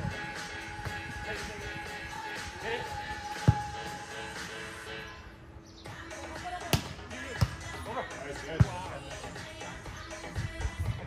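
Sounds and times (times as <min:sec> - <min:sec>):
background music: 0:00.0 - 0:11.0
voices: 0:00.1 - 0:05.2
volleyball being hit: 0:06.7 - 0:07.7.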